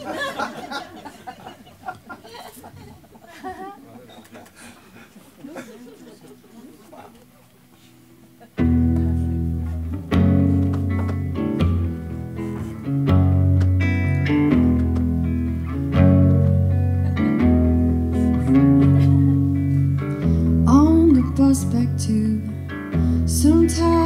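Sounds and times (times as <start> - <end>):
solo guitar chords: 8.6 - 24.0.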